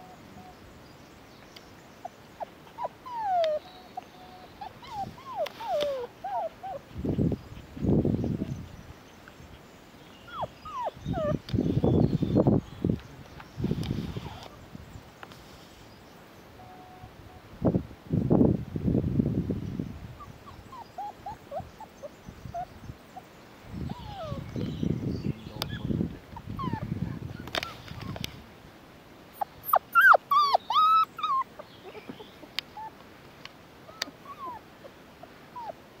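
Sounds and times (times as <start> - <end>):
puppies yelping: 2.4 - 4.0, 4.6 - 6.9, 10.3 - 11.4, 20.2 - 22.7, 23.9 - 24.4, 29.4 - 32.0, 33.9 - 34.6
puppies whimpering and squeaking: 2.7 - 7.0, 10.3 - 11.4, 20.2 - 22.0, 23.9 - 24.5, 25.7 - 28.2, 29.4 - 32.2, 33.9 - 34.6, 35.6 - 35.8.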